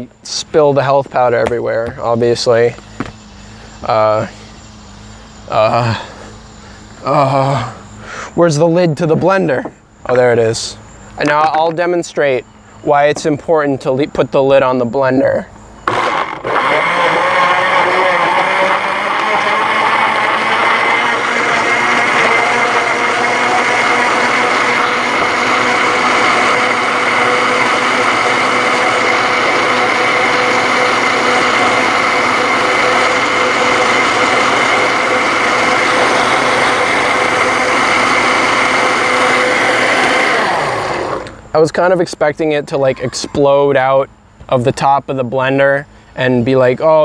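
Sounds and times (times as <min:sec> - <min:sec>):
blender motor whine: 0:15.8 - 0:41.5.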